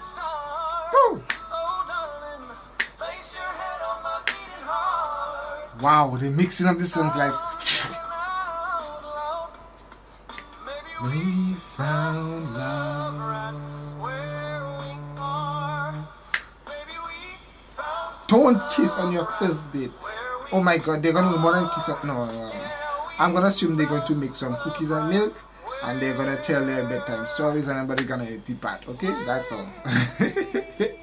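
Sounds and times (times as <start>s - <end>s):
a cappella group singing: 0.0s - 28.2s
finger snap: 1.1s - 1.6s, 2.8s - 3.1s, 4.2s - 4.6s, 9.5s - 10.6s, 16.3s - 16.6s, 28.0s - 28.2s
sharp finger snaps: 1.2s - 1.5s, 2.8s - 3.0s, 4.3s - 4.5s, 10.3s - 10.6s, 16.3s - 16.6s.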